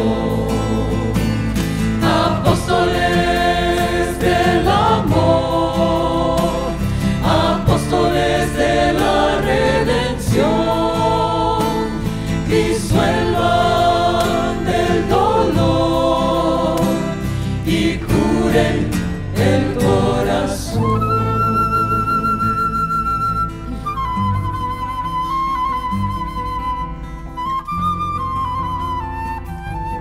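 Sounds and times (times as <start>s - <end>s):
mixed choir singing: 0.0s - 22.6s
acoustic guitar: 0.0s - 30.0s.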